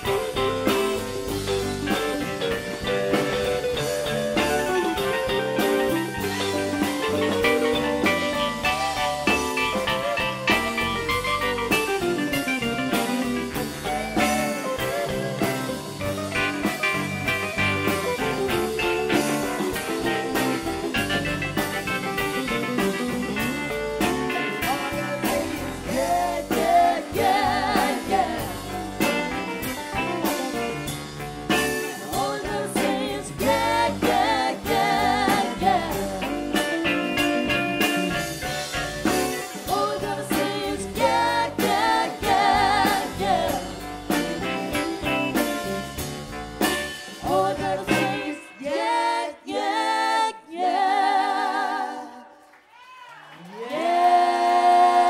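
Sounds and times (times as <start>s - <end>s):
live rock band playing: 0.0s - 48.6s
woman singing lead: 22.8s - 30.7s, 31.8s - 37.4s, 39.4s - 44.8s, 47.2s - 52.4s, 53.6s - 55.0s
harmony singers: 24.6s - 29.3s, 31.8s - 36.8s, 39.5s - 44.1s, 47.1s - 52.5s, 53.6s - 55.0s.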